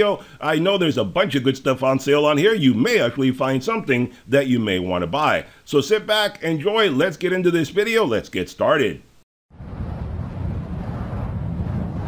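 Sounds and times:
low rumble: 0:09.5 - 0:12.0
airy wind-like noise wash: 0:09.6 - 0:12.0.

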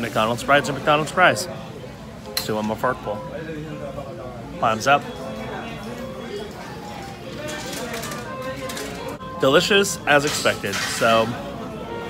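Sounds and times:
indistinct distant voices: 0:00.0 - 0:12.0.

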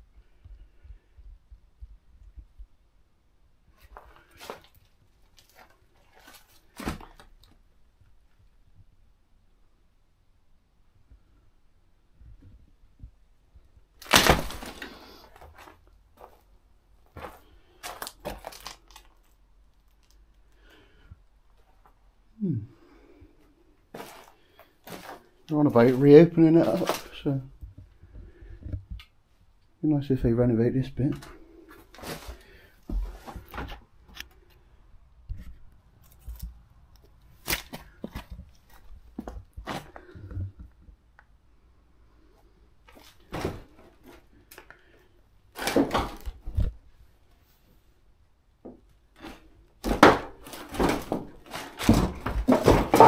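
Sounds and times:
footsteps crunching on rubble: 0:17.1 - 0:18.8, 0:23.9 - 0:27.3, 0:49.8 - 0:53.0
debris clicking and knocking: 0:49.8 - 0:53.0.

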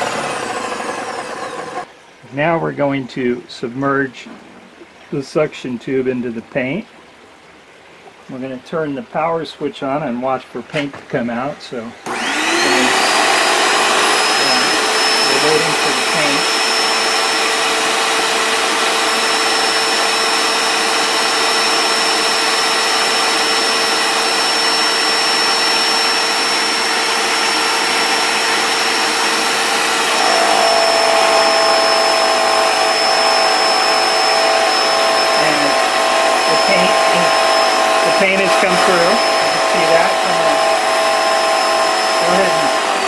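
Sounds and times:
paint sprayer pump running: 0:00.0 - 0:01.9, 0:12.0 - 0:43.0.

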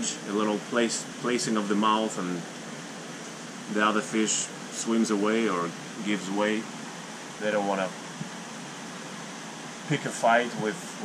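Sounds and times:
aquarium water hiss: 0:00.0 - 0:11.0.

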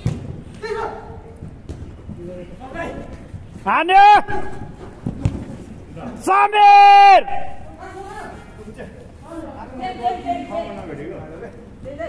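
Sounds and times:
player shouting: 0:03.7 - 0:04.7, 0:06.2 - 0:07.7.

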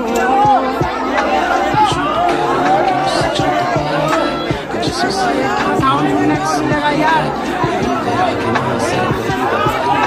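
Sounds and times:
crowd shouting and talking: 0:00.0 - 0:10.0.

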